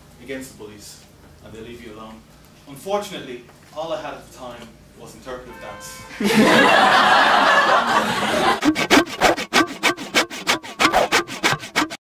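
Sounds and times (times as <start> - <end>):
hand saw sawing: 8.1 - 12.0.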